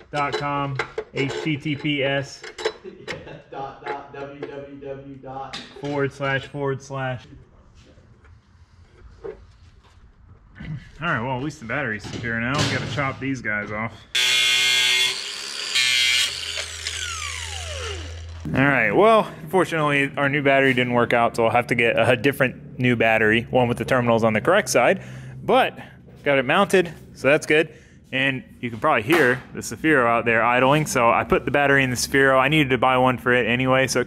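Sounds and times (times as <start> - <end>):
man talking: 0.1 - 2.4, 3.2 - 7.4, 18.5 - 34.0
electric cutting tool whining: 14.2 - 18.5.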